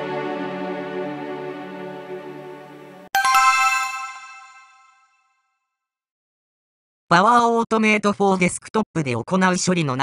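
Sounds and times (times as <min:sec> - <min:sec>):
bell-like chime jingle: 0:03.2 - 0:05.1.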